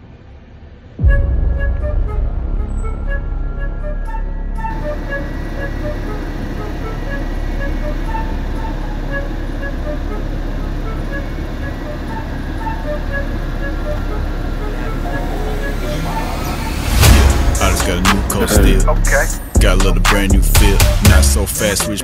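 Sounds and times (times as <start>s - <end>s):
jeep engine and tyres droning: 2.4s - 22.0s.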